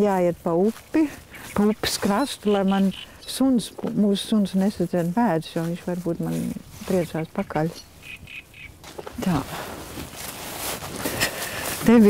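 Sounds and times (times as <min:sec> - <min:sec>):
bird short quick calls: 0:08.0 - 0:08.7.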